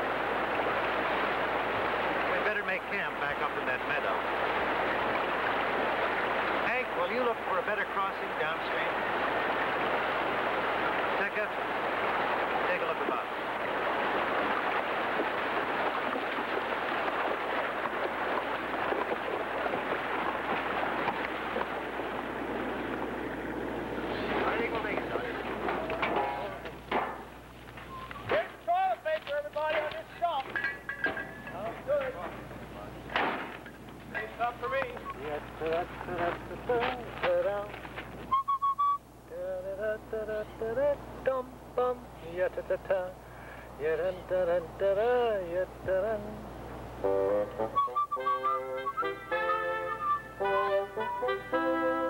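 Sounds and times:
water splashing and rushing: 0.0 - 27.4
short pitched calls: 27.8 - 28.3
sharp knocks: 33.1 - 33.6.

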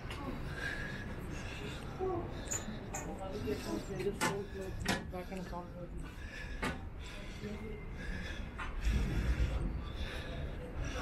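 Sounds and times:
people talking: 2.0 - 6.0.

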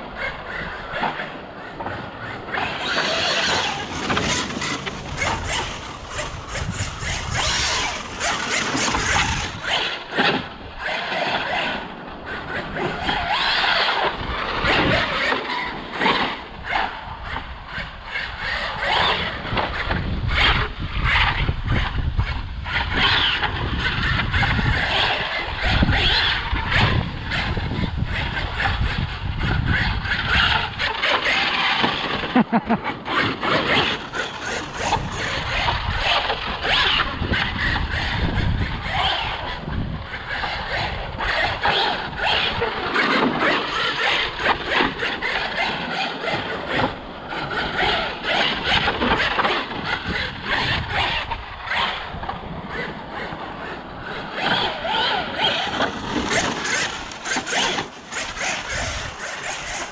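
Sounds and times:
electric rc truck motor: 0.0 - 59.9
tyres on dirt: 0.0 - 59.9.

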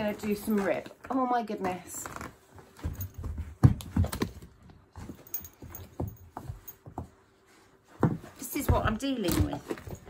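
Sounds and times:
dog paws thumping and scuffling: 0.0 - 10.0.

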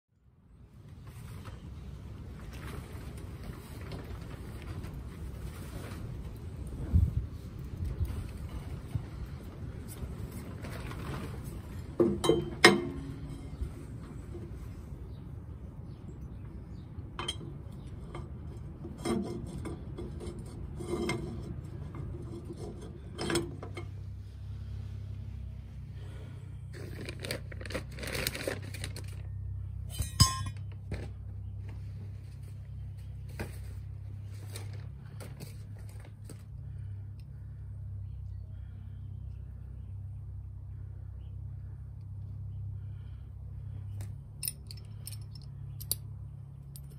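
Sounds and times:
steady low hum: 0.1 - 46.9
wind buffeting microphone: 4.9 - 10.6
metal tools clinking and scraping: 12.0 - 13.8, 29.8 - 31.0, 44.4 - 46.1, 46.7 - 46.9
sharp metallic clank: 29.9 - 30.8.

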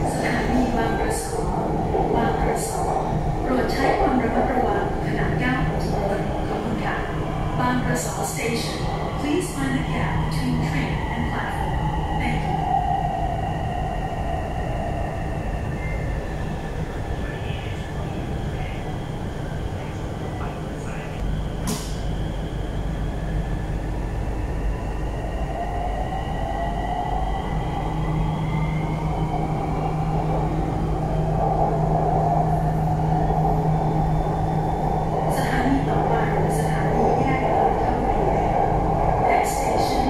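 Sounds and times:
metro train running noise: 0.0 - 40.0
sharp click: 21.6 - 22.0.

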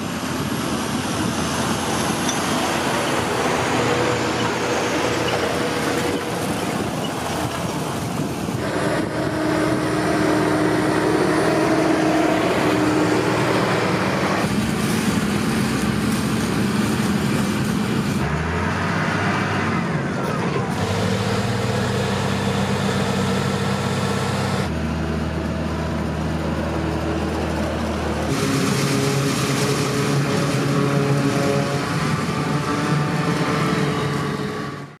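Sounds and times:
tractor engines working under load: 0.0 - 35.0.

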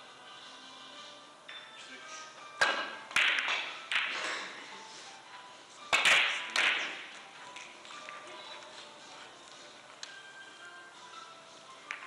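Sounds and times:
background music: 0.0 - 12.0
cue striking ball: 2.6 - 4.2, 6.0 - 7.1
billiard balls clicking: 2.9 - 4.2, 5.9 - 8.3, 11.8 - 12.0.

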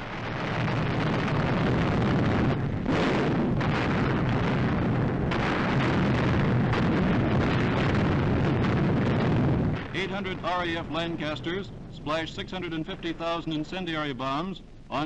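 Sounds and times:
explosions: 0.0 - 14.5
bomber engines roaring: 5.2 - 14.2.

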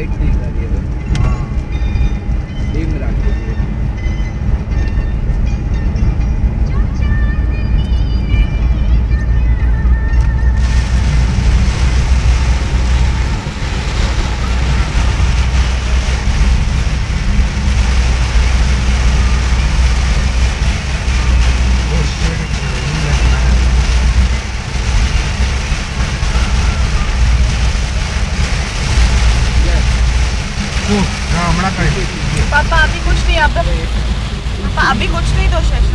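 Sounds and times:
road and engine rumble: 0.0 - 35.9
rain and tyre spray hiss: 10.5 - 35.9.

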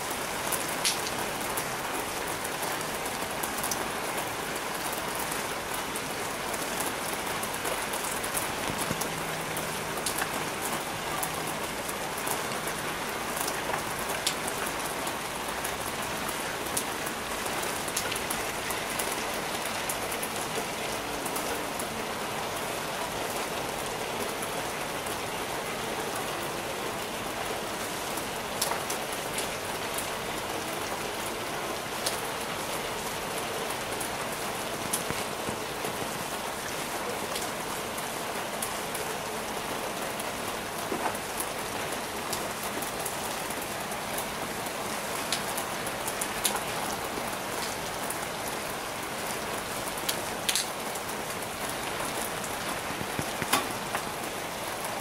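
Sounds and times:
rain on a flat roof: 0.0 - 55.0.

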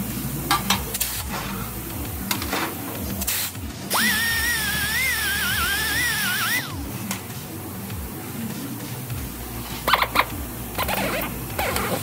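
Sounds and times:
air grinder whining: 3.3 - 6.8.

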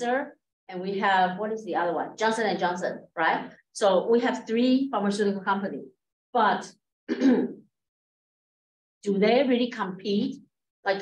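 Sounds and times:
woman clearing her throat: 7.1 - 7.6.

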